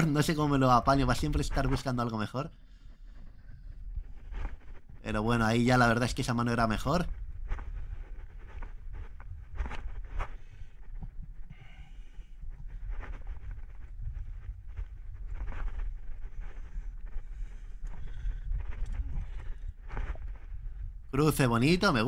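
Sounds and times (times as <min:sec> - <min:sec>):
wind rumble on microphone: 0:00.0 - 0:21.9
person breathing hard: 0:02.5 - 0:04.2, 0:10.2 - 0:13.2, 0:16.2 - 0:21.0.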